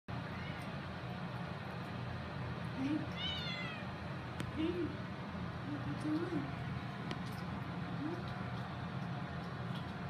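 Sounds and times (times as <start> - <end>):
water running from a faucet: 0.1 - 10.0
cat meowing: 0.3 - 0.7, 3.1 - 3.9.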